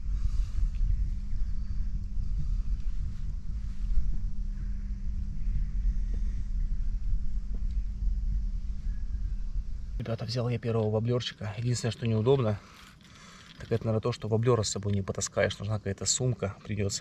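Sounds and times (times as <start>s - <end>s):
wind rumble on microphone: 0.0s - 12.6s.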